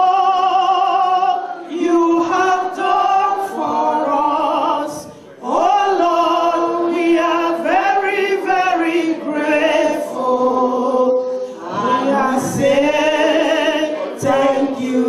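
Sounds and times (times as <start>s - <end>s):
women singing through pa: 0.0s - 15.0s.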